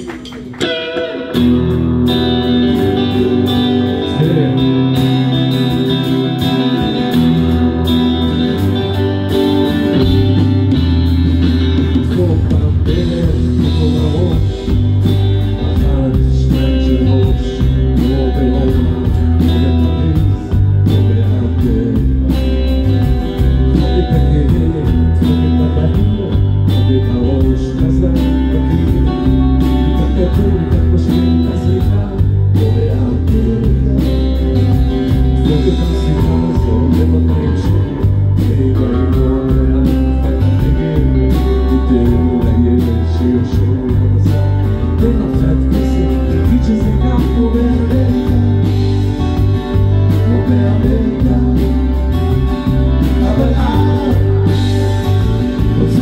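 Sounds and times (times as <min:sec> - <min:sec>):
live rock band playing: 0:00.0 - 0:56.0.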